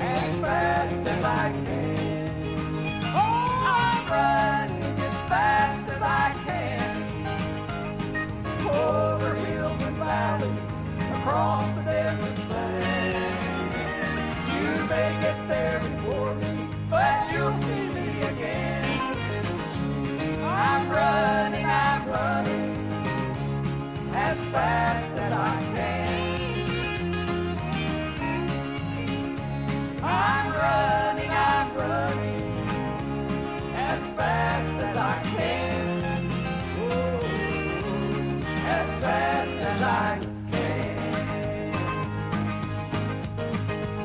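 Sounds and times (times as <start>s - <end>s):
man singing: 0.0s - 7.1s, 8.6s - 13.8s, 14.5s - 19.3s, 36.7s - 42.3s
bending melody line: 0.0s - 44.0s
steady bass: 0.0s - 44.0s
strummed acoustic guitar: 0.0s - 44.0s.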